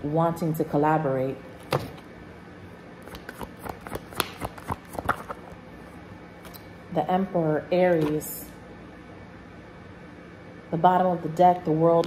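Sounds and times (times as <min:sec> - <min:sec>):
cards being shuffled: 0:03.0 - 0:05.6.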